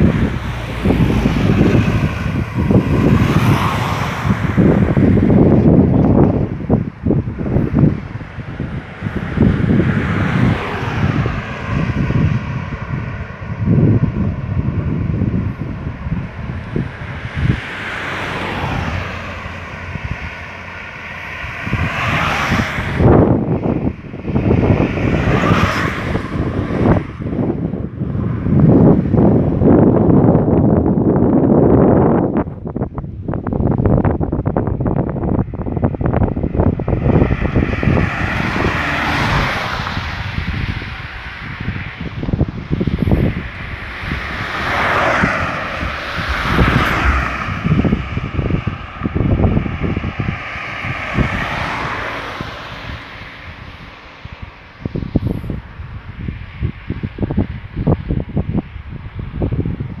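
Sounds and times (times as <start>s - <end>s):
car passing: 0.0s - 60.0s
wind buffeting microphone: 0.0s - 60.0s.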